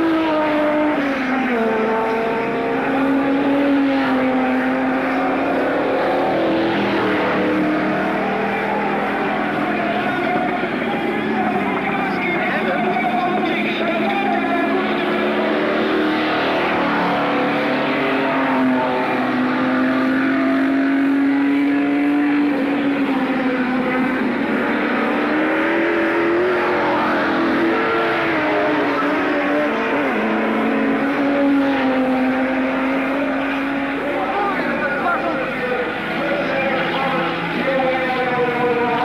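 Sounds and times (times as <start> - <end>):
race car engines: 0.0 - 39.0.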